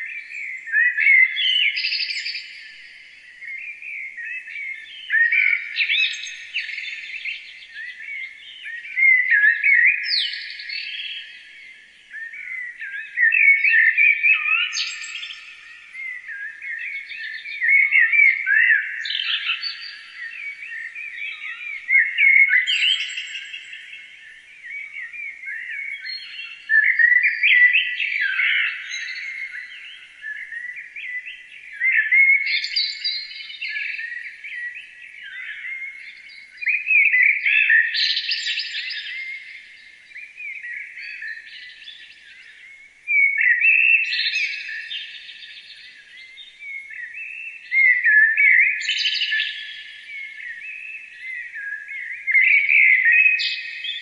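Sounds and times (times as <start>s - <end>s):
songbirds chirping and trilling: 0.0s - 54.0s.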